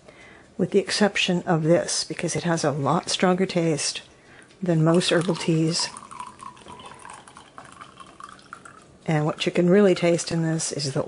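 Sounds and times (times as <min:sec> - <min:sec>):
tea pouring into a ceramic mug: 0:04.9 - 0:10.6.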